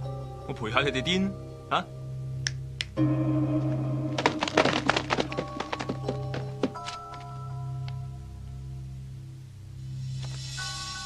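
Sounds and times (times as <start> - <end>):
sharp knocks and thuds: 4.2 - 7.2.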